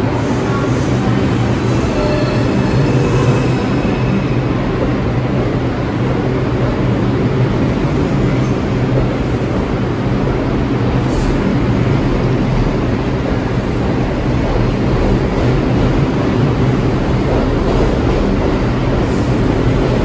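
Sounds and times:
subway train rumbling past: 0.0 - 20.0.

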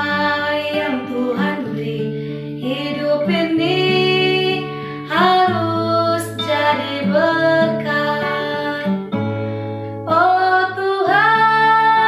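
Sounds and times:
woman singing: 0.0 - 9.3, 10.0 - 12.0
strummed acoustic guitar: 0.0 - 12.0.

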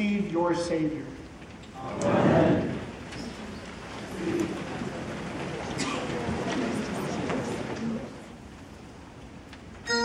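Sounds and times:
rustle of people moving: 0.0 - 9.9.

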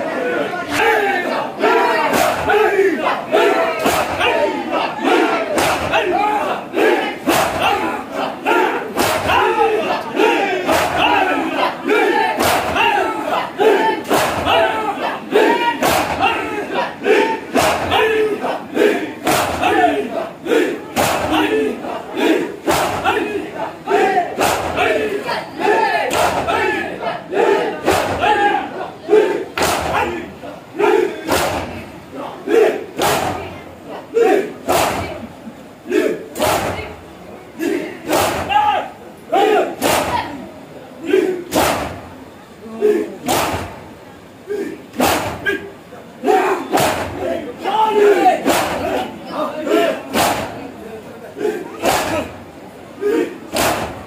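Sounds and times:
crowd chanting and shouting: 0.0 - 54.0.

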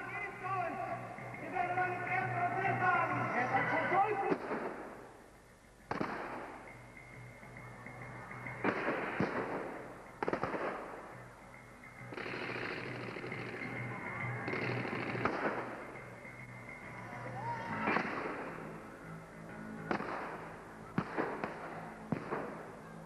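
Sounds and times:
gunfire and pyrotechnic blasts: 4.3 - 5.1, 5.9 - 6.7, 8.6 - 11.2, 12.1 - 13.8, 14.4 - 16.0, 19.8 - 20.4, 21.0 - 22.7.

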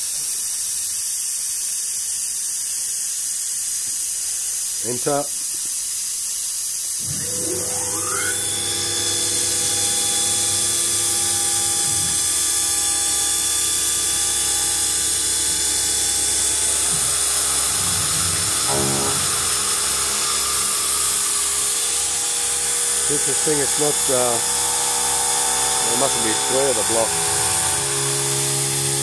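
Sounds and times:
steady hiss: 0.0 - 29.0
buzzing burst: 7.0 - 29.0
milling machine spindle whine: 7.0 - 29.0.

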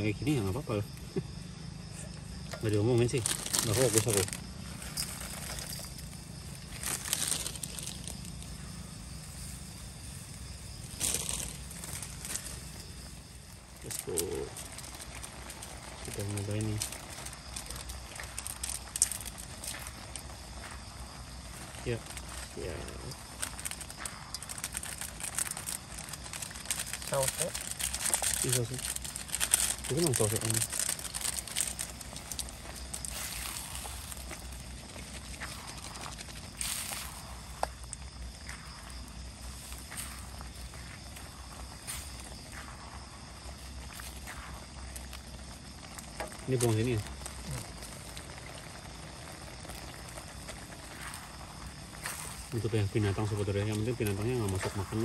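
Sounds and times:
food sizzling and bubbling: 0.0 - 55.0.

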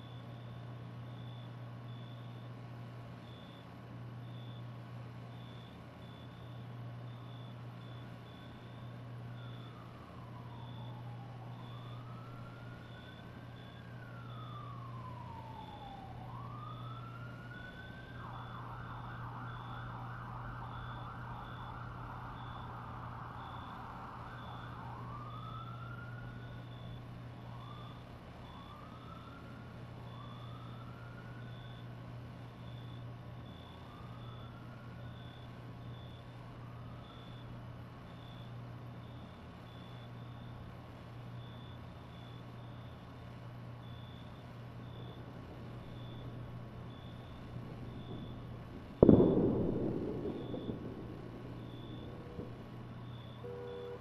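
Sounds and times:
low steady hum: 0.0 - 54.0
siren wailing and yelping: 8.6 - 31.9
steady rain: 49.7 - 54.0.

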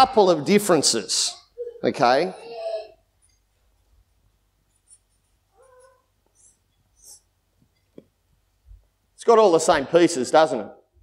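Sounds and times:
marker drawing on paper: 4.7 - 7.3.

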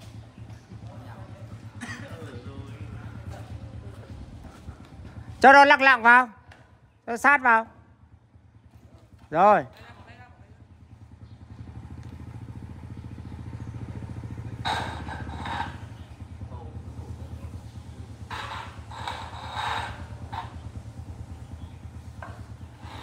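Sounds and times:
small engine running: 0.0 - 6.2, 7.2 - 23.0.

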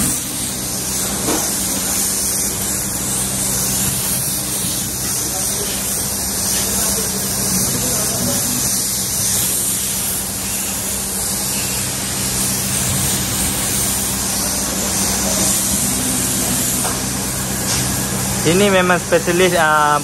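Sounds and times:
paint spray gun hissing: 0.0 - 20.0
steady low hum: 0.0 - 20.0.

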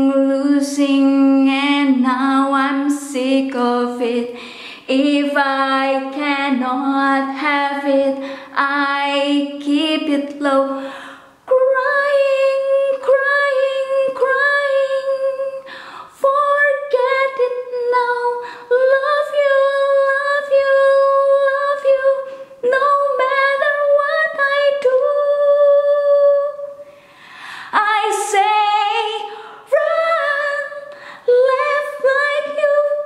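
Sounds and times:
woman singing unaccompanied: 0.0 - 26.9, 27.7 - 33.0.

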